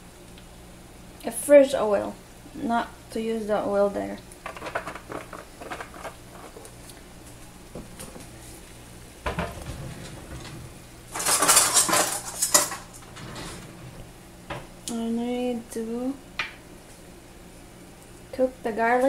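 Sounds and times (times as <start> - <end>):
metal utensils clattering: 9.3 - 13.8.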